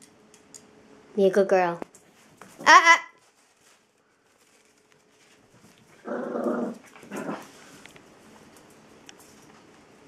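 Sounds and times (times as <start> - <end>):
small dog growling: 6.0 - 7.6.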